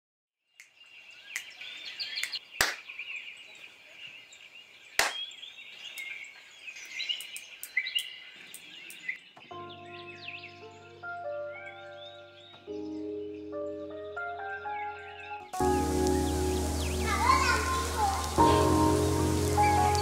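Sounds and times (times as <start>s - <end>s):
birds chirping: 0.5s - 20.0s
held keyboard chord: 9.6s - 20.0s.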